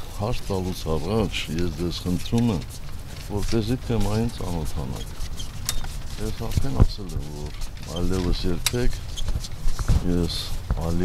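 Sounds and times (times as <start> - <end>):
voices talking: 0.2 - 5.4, 6.1 - 9.0
wind on microphones: 9.0 - 11.0.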